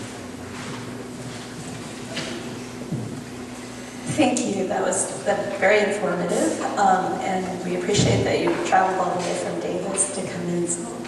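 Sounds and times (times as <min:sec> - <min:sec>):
room hum: 0:00.0 - 0:11.0
microphone handling noise: 0:00.4 - 0:04.4.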